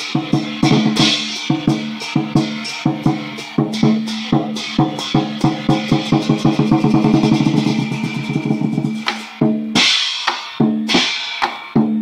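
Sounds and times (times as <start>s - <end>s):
cymbals clashing: 0.0s - 12.0s
lion dance drum beating: 0.0s - 12.0s.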